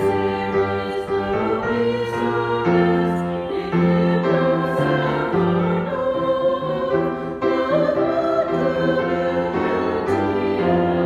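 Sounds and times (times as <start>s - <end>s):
upright piano playing a hymn: 0.0s - 11.0s.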